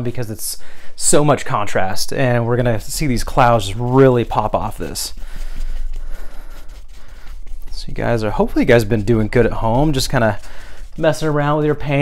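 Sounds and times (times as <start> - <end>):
paintbrush scrubbing on canvas: 0.0 - 12.0
steady low hum: 0.0 - 12.0.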